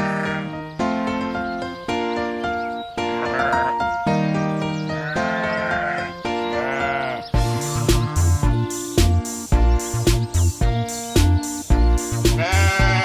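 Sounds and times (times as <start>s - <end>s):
sheep bleating: 0.0s - 0.6s, 3.1s - 3.9s, 4.9s - 8.7s, 12.3s - 13.0s
children's song music: 0.0s - 13.0s
heavy low beat thumps: 7.4s - 13.0s.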